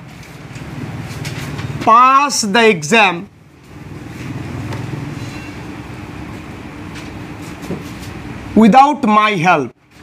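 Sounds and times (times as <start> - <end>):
low mechanical rumble with hum: 0.0 - 8.8.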